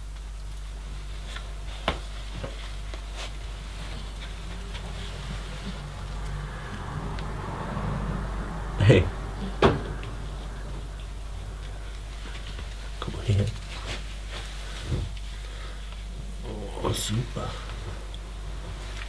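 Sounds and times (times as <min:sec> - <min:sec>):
steady low hum: 0:00.0 - 0:19.0
faint rustling: 0:00.5 - 0:08.5, 0:09.2 - 0:19.0.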